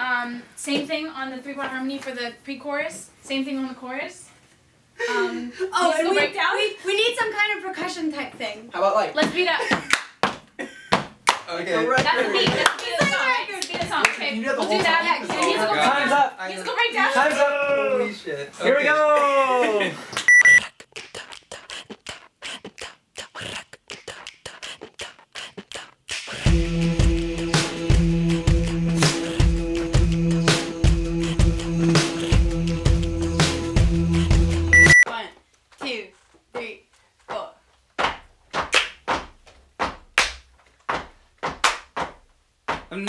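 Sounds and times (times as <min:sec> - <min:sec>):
rhythmic hand claps: 0:09.2 - 0:15.6, 0:20.2 - 0:32.7, 0:38.0 - 0:43.0
beatboxing clicks: 0:20.2 - 0:26.6, 0:29.0 - 0:29.4, 0:32.0 - 0:32.4
short electronic beep: 0:20.3 - 0:20.6, 0:34.7 - 0:35.1.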